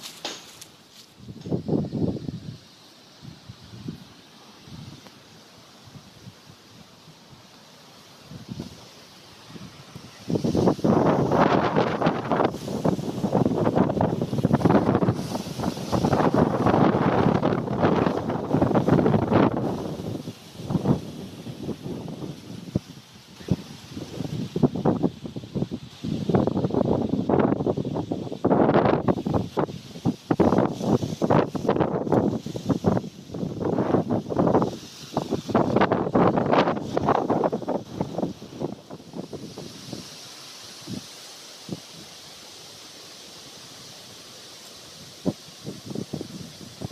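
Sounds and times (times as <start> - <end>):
wind buffeting microphone: 1.2 - 5.1, 8.2 - 8.9, 9.5 - 40.2, 45.1 - 46.9.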